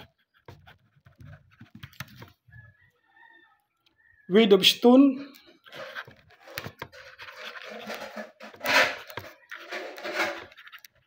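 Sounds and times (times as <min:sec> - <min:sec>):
pen scratching on paper: 0:00.0 - 0:02.4, 0:05.6 - 0:11.0.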